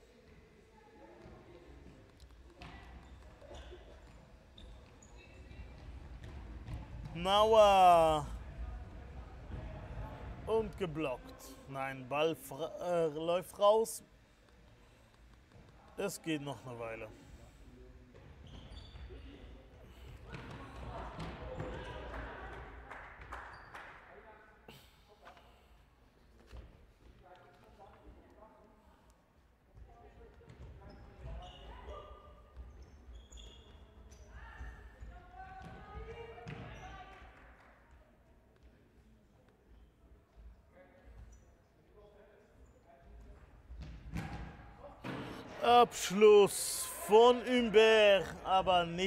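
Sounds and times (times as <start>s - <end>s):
players shouting: 45.4s - 49.0s.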